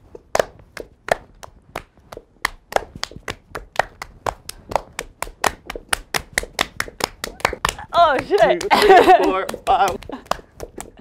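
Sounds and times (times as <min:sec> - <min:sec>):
sharp hand claps: 0:00.2 - 0:11.0.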